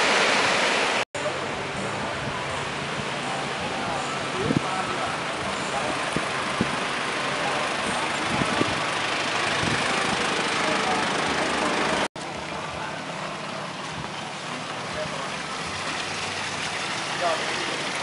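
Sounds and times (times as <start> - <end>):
outdoor background noise: 0.0 - 18.0.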